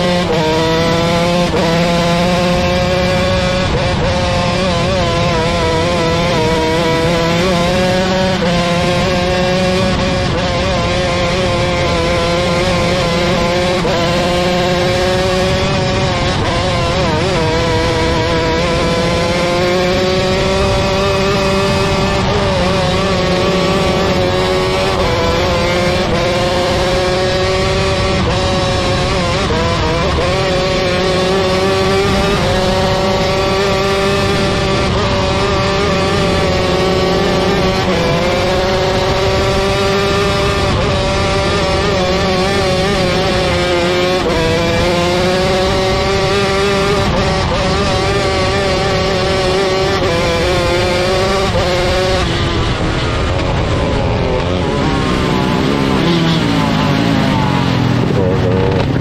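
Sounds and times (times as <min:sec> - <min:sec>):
racing car engine: 0:00.0 - 0:59.0
wind and track noise: 0:00.0 - 0:59.0.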